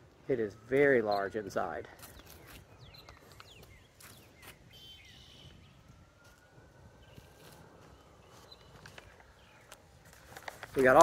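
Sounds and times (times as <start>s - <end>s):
distant siren: 0.0s - 11.0s
bird chirps: 0.8s - 6.1s, 6.9s - 9.9s.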